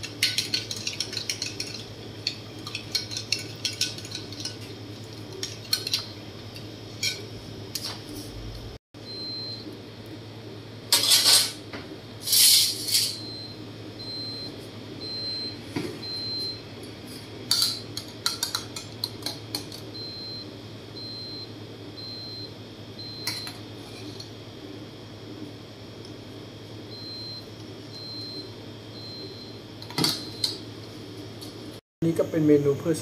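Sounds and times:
spoon stirring in glass jug: 0:00.0 - 0:07.3
low steady hum: 0:00.0 - 0:33.0.

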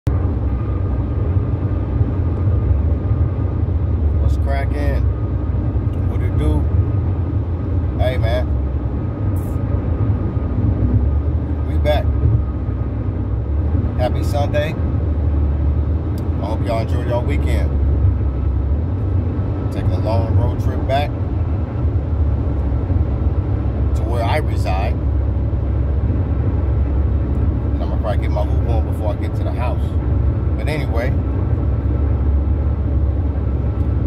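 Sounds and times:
car cabin road rumble: 0:00.0 - 0:34.0
man's voice: 0:27.8 - 0:29.9, 0:30.6 - 0:31.2.

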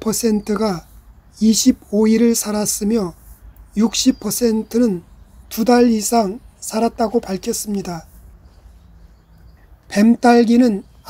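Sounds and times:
faint low hum with hiss: 0:00.0 - 0:11.0.

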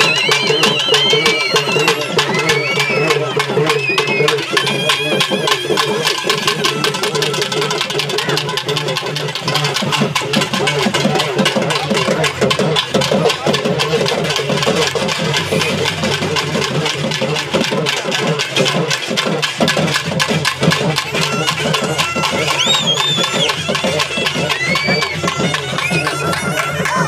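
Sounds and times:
reed pipe melody: 0:00.0 - 0:18.9, 0:19.7 - 0:27.0
barrel drums beaten with sticks: 0:00.0 - 0:27.0.

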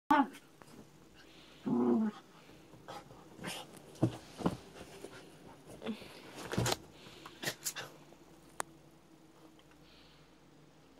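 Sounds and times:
bedding rustling: 0:02.2 - 0:08.5.

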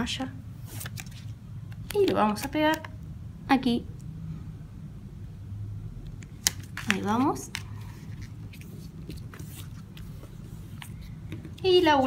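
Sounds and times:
paper sticker handling: 0:00.6 - 0:02.8, 0:06.2 - 0:12.0.

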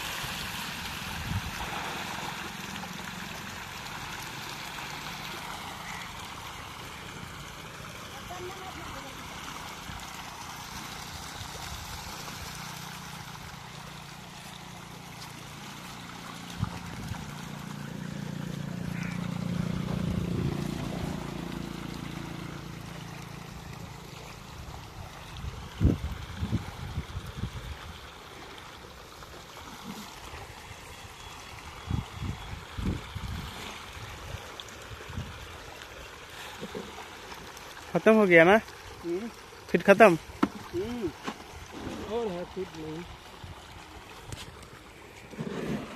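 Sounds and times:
fish splashing in pond water: 0:00.0 - 0:45.9.

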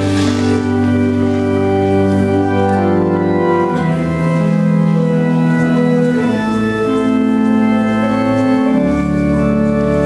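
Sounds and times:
church organ playing chords: 0:00.0 - 0:10.0.

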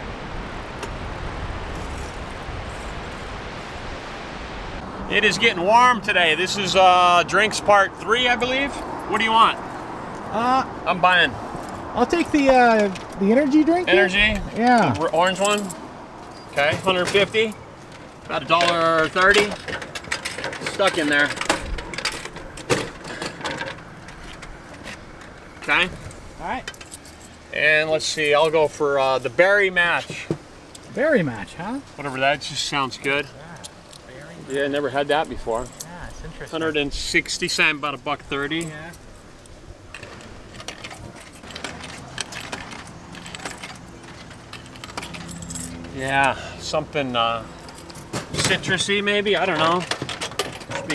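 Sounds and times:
coins clinking into coin slot: 0:40.5 - 0:46.2.

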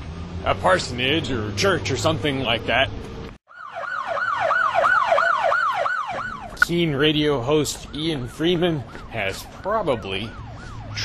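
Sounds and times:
police siren yelping: 0:03.5 - 0:11.0.

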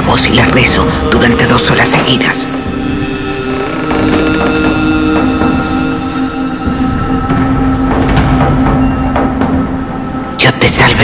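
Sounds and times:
sustained droning chord: 0:00.0 - 0:10.8
low rumble: 0:00.0 - 0:11.0.

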